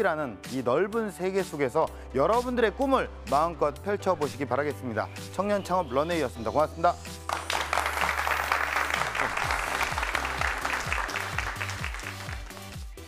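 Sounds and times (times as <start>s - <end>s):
upbeat theme music: 0.0s - 13.0s
audience applause: 7.3s - 12.9s.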